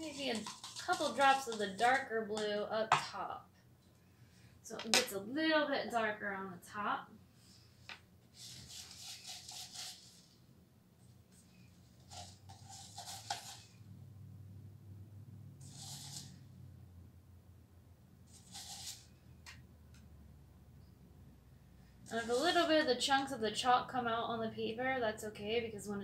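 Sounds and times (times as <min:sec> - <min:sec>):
paintbrush swishing in a cup: 0:00.0 - 0:02.1, 0:08.4 - 0:10.3, 0:12.0 - 0:13.8, 0:15.6 - 0:16.4, 0:18.3 - 0:19.1, 0:22.1 - 0:22.7
low room hum: 0:00.0 - 0:26.0.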